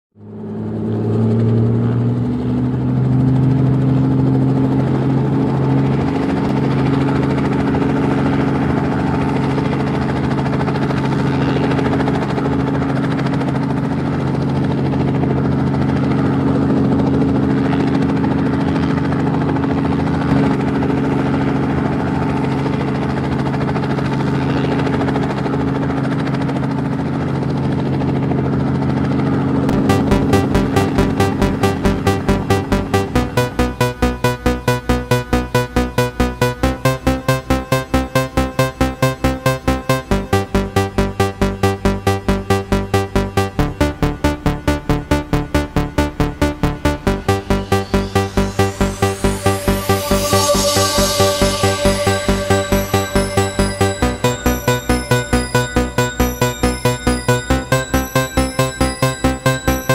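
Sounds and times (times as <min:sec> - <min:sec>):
drone motors humming: 0:29.7 - 0:59.9.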